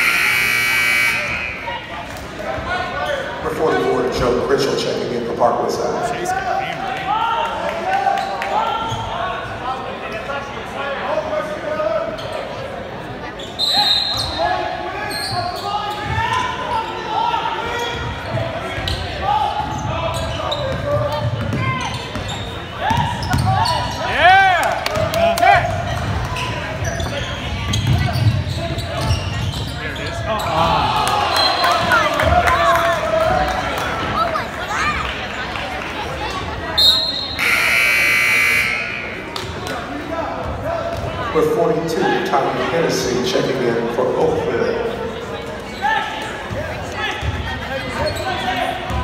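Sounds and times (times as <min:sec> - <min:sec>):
sneakers squeaking: 0:08.2 - 0:10.3, 0:12.1 - 0:12.7, 0:13.3 - 0:16.9, 0:17.6 - 0:24.2, 0:25.7 - 0:30.7, 0:36.3 - 0:39.8, 0:44.5 - 0:49.0.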